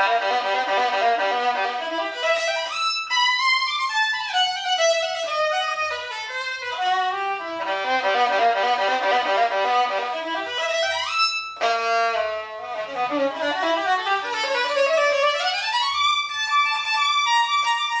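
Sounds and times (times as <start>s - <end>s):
solo violin played with bow: 0.0s - 18.0s.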